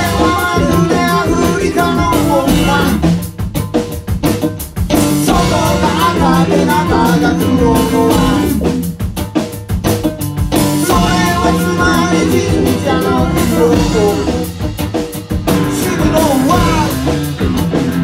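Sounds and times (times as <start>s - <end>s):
drum kit strokes: 0.0s - 18.0s
live band playing: 0.0s - 18.0s.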